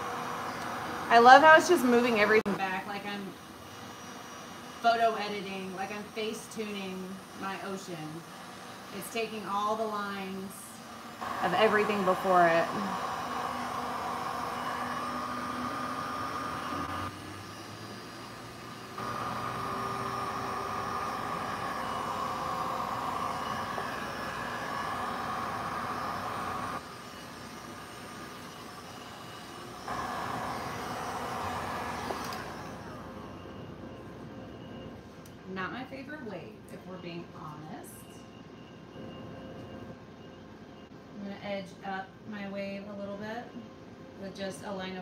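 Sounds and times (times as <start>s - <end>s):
heat gun blowing air: 0.0s - 33.3s.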